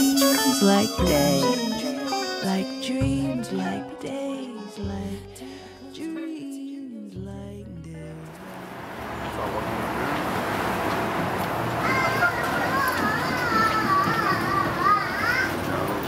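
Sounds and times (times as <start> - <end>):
high wavering voice calling out: 0.0 - 5.9
street background noise: 8.2 - 16.0
passers-by voices: 9.0 - 16.0.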